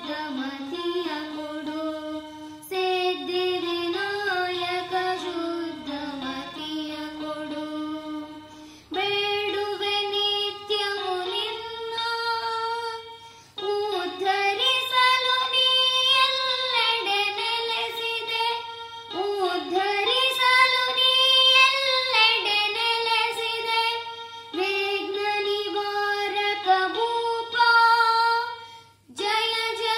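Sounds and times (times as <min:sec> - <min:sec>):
boy singing: 0:00.0 - 0:29.9.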